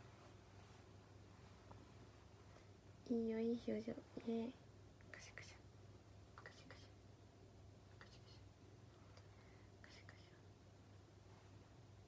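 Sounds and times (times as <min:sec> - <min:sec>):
faint low hum: 0:00.0 - 0:12.0
woman speaking: 0:03.0 - 0:04.6
woman whispering: 0:03.1 - 0:05.7, 0:06.4 - 0:07.0, 0:07.9 - 0:08.5, 0:09.8 - 0:10.5.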